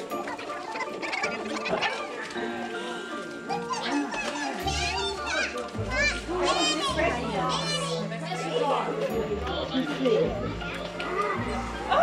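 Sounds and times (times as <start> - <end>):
background music: 0.0 - 12.0
children's excited chatter: 0.0 - 12.0.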